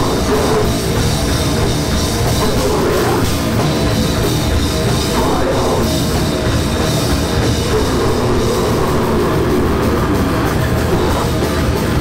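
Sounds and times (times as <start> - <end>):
distorted guitars and bass: 0.0 - 12.0
drums: 0.0 - 12.0.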